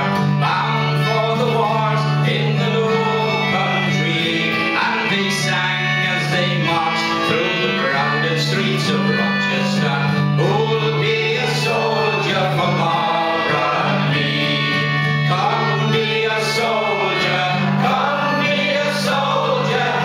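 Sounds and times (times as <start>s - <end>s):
acoustic guitar: 0.0s - 20.0s
concertina: 0.0s - 20.0s
person singing: 0.0s - 20.0s.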